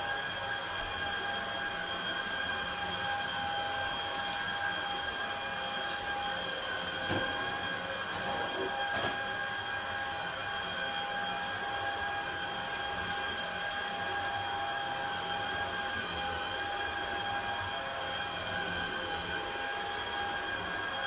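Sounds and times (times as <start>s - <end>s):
vacuum cleaner running: 0.0s - 21.0s.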